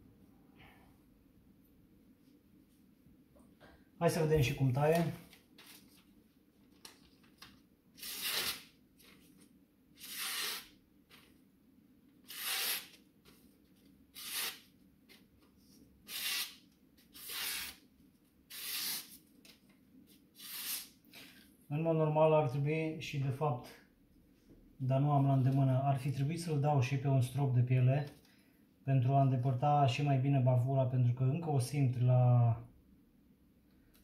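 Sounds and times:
knife slicing magazine page: 6.8 - 9.3, 10.0 - 11.2, 12.3 - 13.0, 14.2 - 14.6, 18.5 - 19.2.

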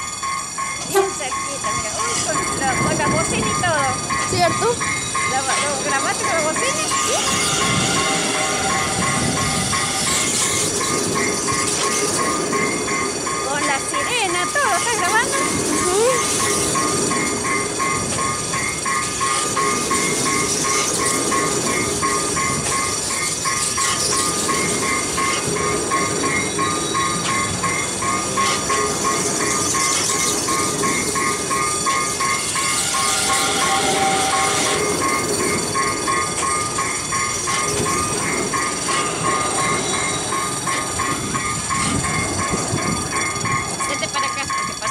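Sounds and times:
crossing warning bell ringing: 0.0 - 44.9
train wheels rumbling and clattering: 0.0 - 44.9
wheel squeal: 22.4 - 43.6.

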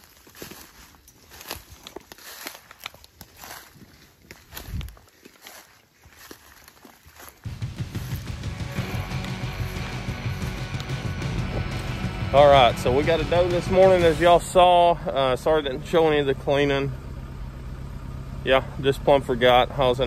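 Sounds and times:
footsteps crunching dry leaves: 0.0 - 16.2
background music: 7.4 - 16.4.

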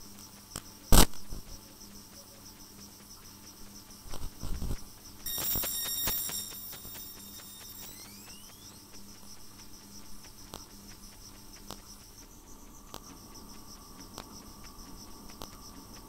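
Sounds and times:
high-pitched electronic tones: 5.3 - 9.3.

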